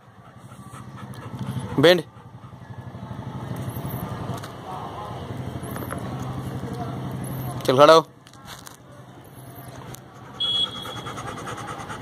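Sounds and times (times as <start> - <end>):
vehicle engine running: 0.0 - 7.7.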